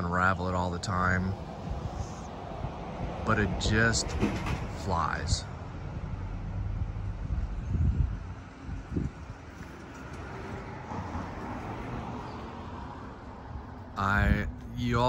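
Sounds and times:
wind buffeting microphone: 0.3s - 15.0s.

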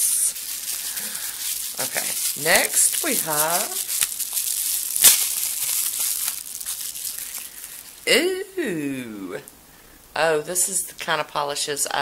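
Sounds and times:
bubble wrap crinkling: 0.0s - 8.1s.

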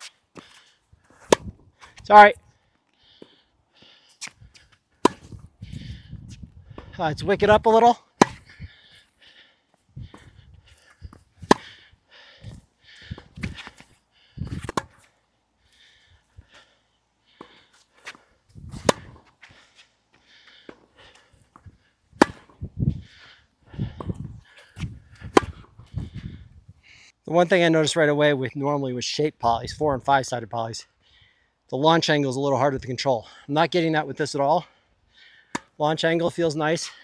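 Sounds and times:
racquet striking tennis ball: 1.2s - 1.6s, 5.0s - 5.4s, 7.7s - 8.5s, 11.1s - 11.8s, 14.6s - 15.0s, 18.7s - 19.3s, 21.6s - 22.6s, 25.2s - 25.8s, 35.5s - 35.8s
tennis ball bouncing: 1.2s - 2.0s, 5.0s - 5.4s, 8.2s - 8.5s, 11.0s - 11.8s, 14.6s - 15.0s, 17.4s - 19.5s, 21.5s - 22.6s, 25.1s - 25.9s.

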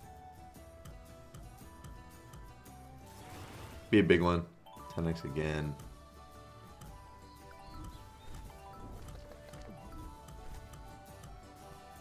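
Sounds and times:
game background music: 0.0s - 12.0s.

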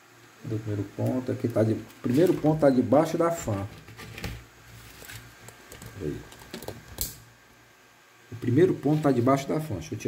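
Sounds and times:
low steady hum: 0.0s - 10.0s
objects clicking and tapping: 5.4s - 7.2s.

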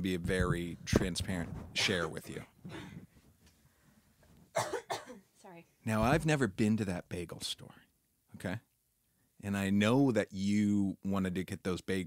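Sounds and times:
person coughing: 4.6s - 5.3s.

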